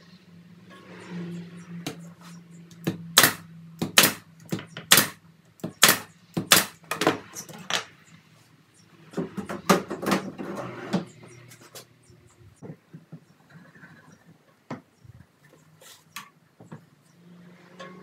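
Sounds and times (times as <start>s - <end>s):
nail gun firing into wood: 3.2s - 4.3s, 4.9s - 7.2s.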